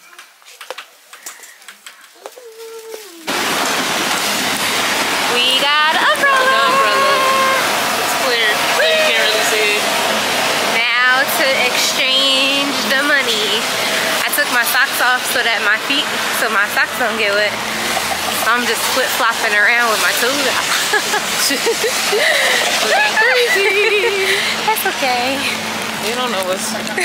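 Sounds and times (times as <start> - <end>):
rain hissing on wet street: 1.0 - 27.0
voices talking: 5.2 - 27.0.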